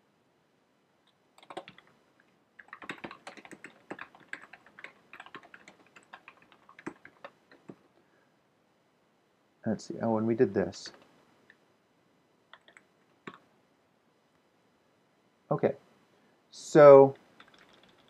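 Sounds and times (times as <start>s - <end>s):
typing on a computer keyboard: 1.4s - 1.9s, 2.6s - 7.9s, 12.5s - 13.4s, 17.4s - 18.0s.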